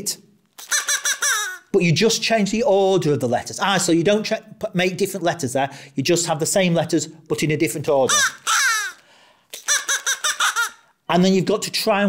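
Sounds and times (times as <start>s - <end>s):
crow caws: 8.1s - 9.0s.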